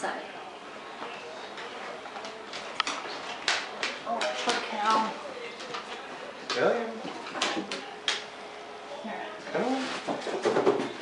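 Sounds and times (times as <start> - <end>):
dog claws clicking on wood floor: 2.2 - 4.6.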